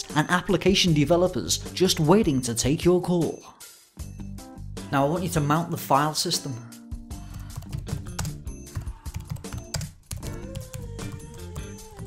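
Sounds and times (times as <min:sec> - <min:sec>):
background music with low bass: 0:00.0 - 0:12.0
laptop keyboard typing: 0:07.2 - 0:12.0.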